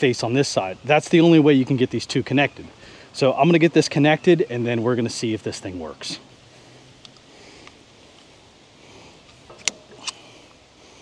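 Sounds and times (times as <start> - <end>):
faint steady hiss: 0.0 - 11.0
metallic clicks of hose coupler: 9.2 - 10.3.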